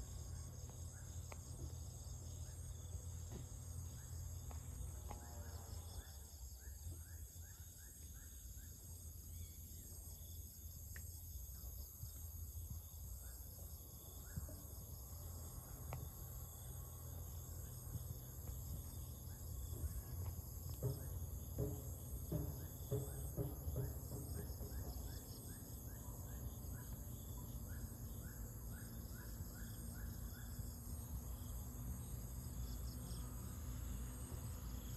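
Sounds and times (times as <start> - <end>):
crickets and insects chorus: 0.0 - 34.9.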